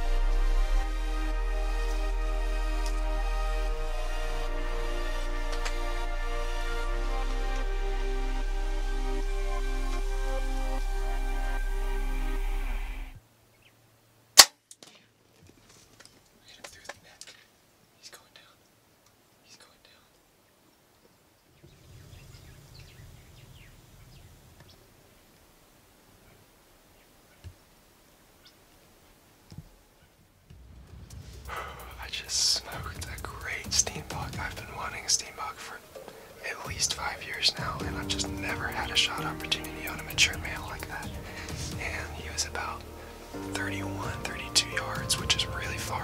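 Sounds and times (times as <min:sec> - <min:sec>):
background music: 0:00.0 - 0:13.2, 0:30.7 - 0:46.0
bow shot sharp crack: 0:14.4 - 0:15.0
man whispering: 0:16.4 - 0:17.4, 0:18.0 - 0:18.7, 0:19.4 - 0:20.2, 0:31.5 - 0:46.0.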